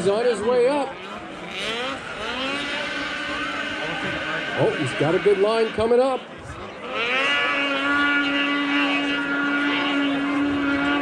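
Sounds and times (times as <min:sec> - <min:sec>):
snowmobile engine whining: 0:00.0 - 0:11.0.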